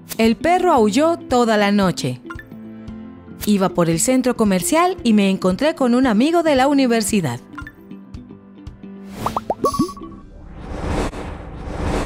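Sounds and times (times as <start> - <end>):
background music: 0.0 - 10.5
whoosh: 9.1 - 12.0
cartoon bubble pops: 9.2 - 10.2.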